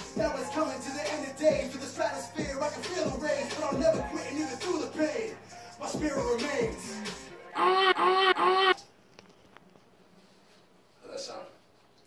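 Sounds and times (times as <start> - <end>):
goose-like honks: 7.6 - 8.8.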